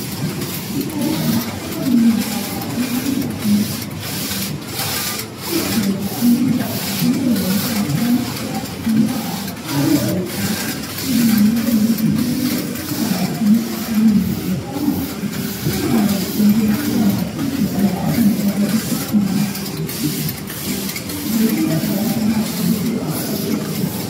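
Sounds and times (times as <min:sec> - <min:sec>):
knitting machine clicks: 0:00.0 - 0:24.0
knitting machine whirring: 0:00.0 - 0:24.0.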